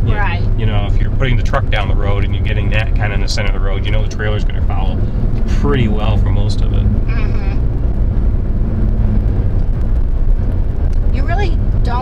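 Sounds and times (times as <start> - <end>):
road and engine noise in truck cab: 0.0 - 12.0.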